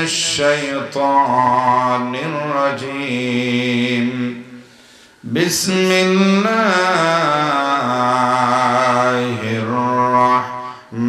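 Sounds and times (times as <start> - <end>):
man chanting melodically: 0.0 - 4.6, 5.2 - 11.0.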